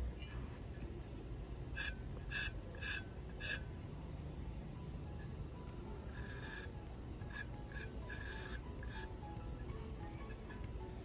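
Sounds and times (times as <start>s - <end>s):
pencil scratching on ceramic: 1.8s - 3.6s, 6.1s - 9.1s.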